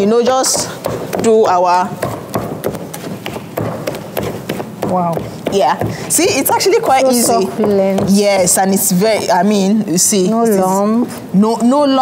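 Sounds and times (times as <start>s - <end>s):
wooden spatula knocking metal pot: 0.0s - 9.5s.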